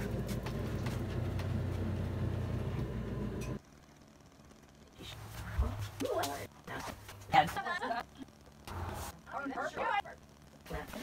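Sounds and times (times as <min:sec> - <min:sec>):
people laughing: 0:07.4 - 0:08.3.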